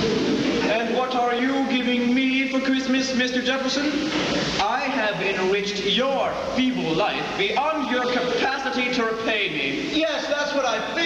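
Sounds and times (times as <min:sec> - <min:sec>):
actor speaking on stage: 0:00.6 - 0:11.0.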